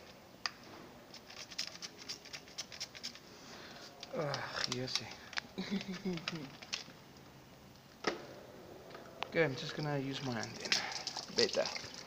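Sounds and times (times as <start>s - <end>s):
water dripping on metal: 9.8s - 12.0s.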